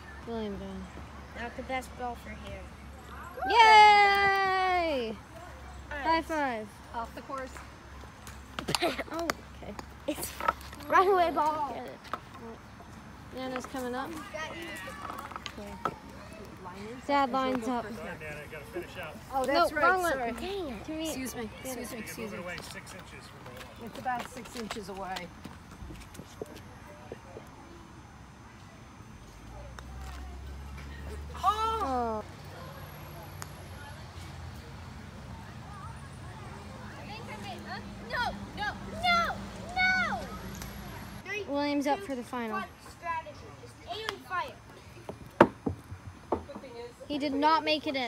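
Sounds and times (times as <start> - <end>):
faint distant voices: 0.0 - 48.0
ball knocking on wooden box: 45.1 - 46.7.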